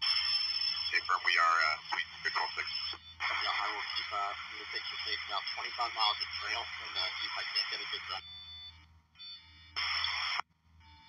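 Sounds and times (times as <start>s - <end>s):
radio static burst: 0.0s - 8.2s, 9.8s - 10.4s.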